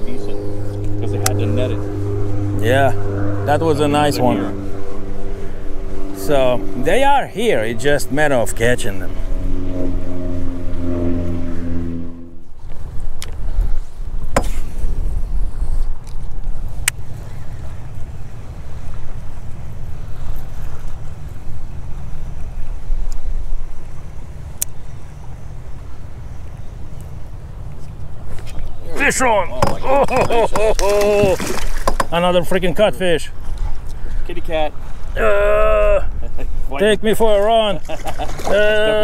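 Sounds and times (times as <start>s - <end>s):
motor hum: 0.0s - 39.0s
wind: 0.0s - 39.0s
choppy water: 30.6s - 32.4s, 37.6s - 39.0s.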